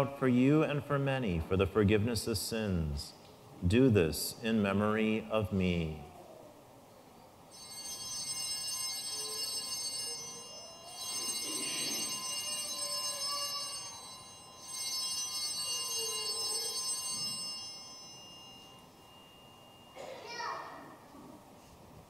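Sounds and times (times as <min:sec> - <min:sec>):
altar bells ringing: 0:07.5 - 0:21.0.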